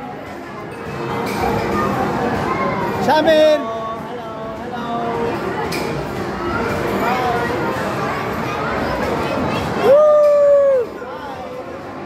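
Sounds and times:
background babble of voices: 0:00.0 - 0:12.0.

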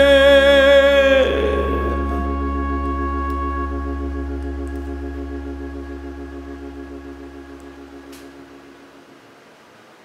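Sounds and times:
held organ chord: 0:00.0 - 0:09.2
faint click: 0:07.6 - 0:08.4.

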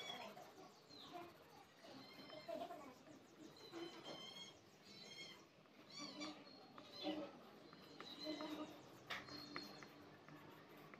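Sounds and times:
faint bird chirps: 0:00.0 - 0:10.9.

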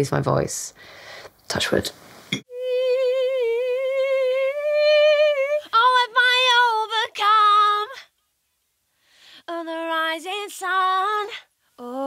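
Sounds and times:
woman singing unaccompanied: 0:02.5 - 0:08.2, 0:09.4 - 0:12.0.

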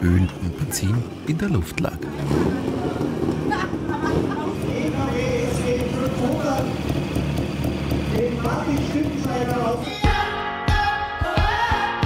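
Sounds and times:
crowd chatter: 0:00.0 - 0:07.2
motorcycle engine running: 0:00.0 - 0:10.3.

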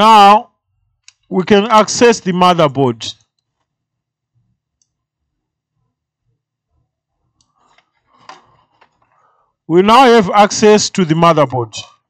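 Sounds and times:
small clicks and rustling: 0:03.2 - 0:03.8, 0:07.2 - 0:09.2.

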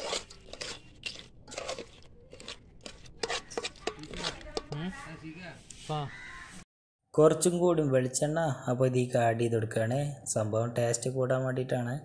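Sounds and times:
person talking: 0:03.8 - 0:06.2.

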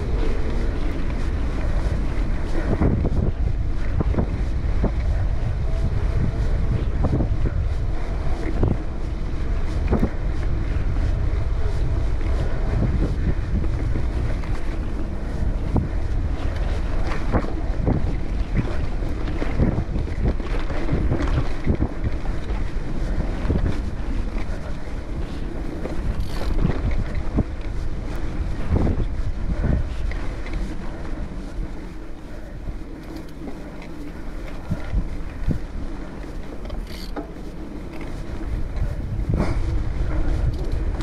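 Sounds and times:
wind buffeting microphone: 0:00.0 - 0:41.0
bike knocks and rattles: 0:36.6 - 0:38.2.

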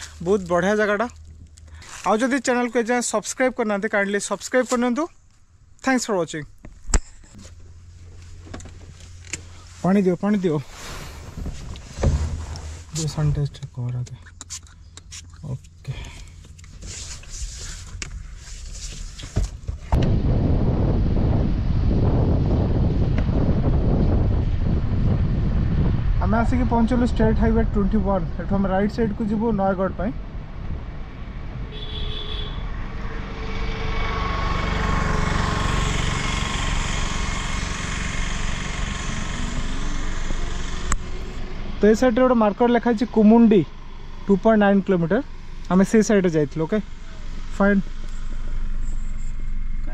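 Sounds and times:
car engine hum: 0:00.0 - 0:49.9.

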